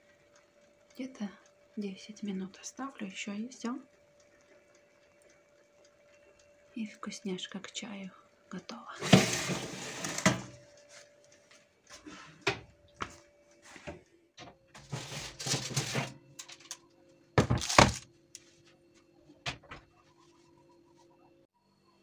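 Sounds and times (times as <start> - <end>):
metal tray scraping and clattering: 9.0 - 10.6, 14.8 - 16.2.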